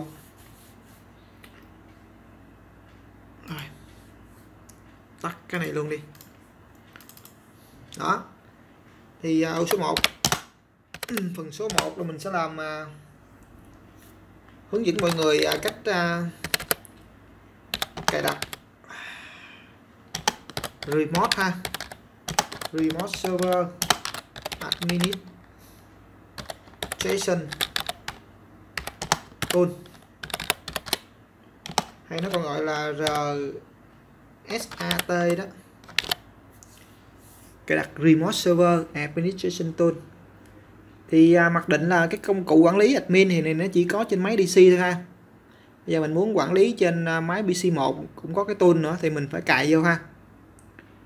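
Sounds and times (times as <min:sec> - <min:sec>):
keyboard and mouse clicks: 0:05.6 - 0:07.4, 0:09.6 - 0:12.0, 0:14.9 - 0:17.0, 0:17.7 - 0:18.6, 0:20.1 - 0:25.5, 0:26.4 - 0:28.2, 0:28.8 - 0:33.3, 0:34.5 - 0:36.2.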